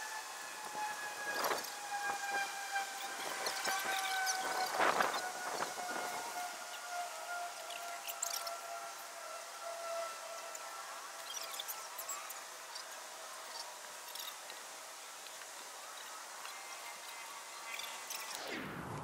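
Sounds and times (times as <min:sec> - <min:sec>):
distant whining tone falling in pitch: 0:00.0 - 0:13.5, 0:16.2 - 0:19.0
rustling among branches: 0:03.0 - 0:06.4.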